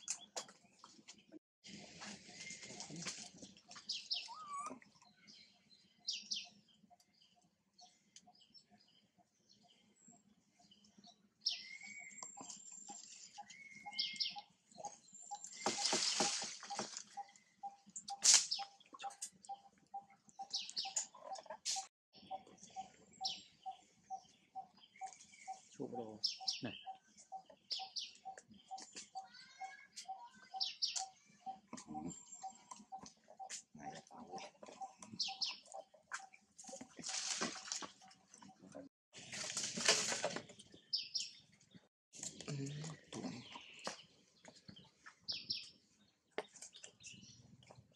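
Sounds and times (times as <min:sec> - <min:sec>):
birds chirping: 0:00.0 - 0:39.4, 0:40.4 - 0:47.9.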